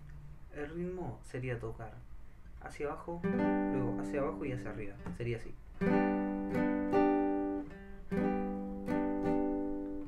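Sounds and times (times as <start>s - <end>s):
nylon-string guitar strumming: 3.2s - 10.0s.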